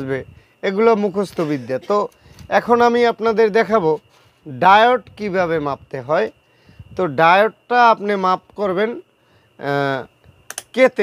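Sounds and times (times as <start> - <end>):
man speaking: 0.0 - 6.4, 7.0 - 9.0, 9.6 - 10.1, 10.7 - 11.0
rotary switch clicks: 10.5 - 10.8.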